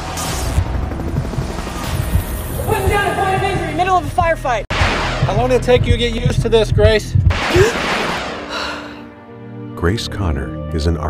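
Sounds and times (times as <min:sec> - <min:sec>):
helicopter rotor thumping: 0:00.3 - 0:08.4.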